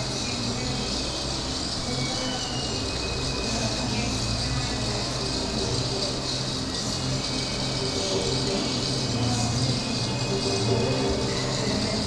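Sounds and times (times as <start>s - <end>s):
even hiss: 0.0s - 12.0s.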